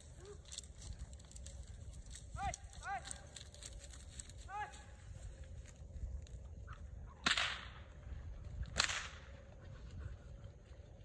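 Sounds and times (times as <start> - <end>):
whip cracks: 7.2 - 7.8, 8.7 - 9.3.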